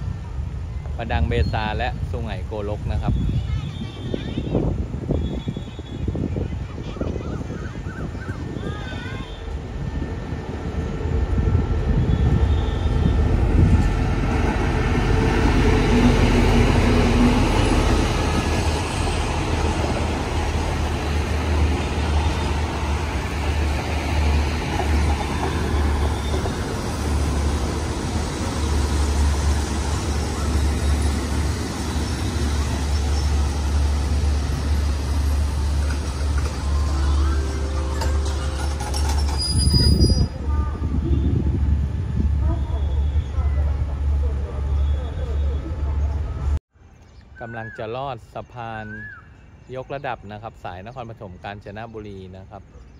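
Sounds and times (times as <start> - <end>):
carriages rumbling over rails: 0.0 - 46.6
locomotive engine drone: 9.3 - 46.6.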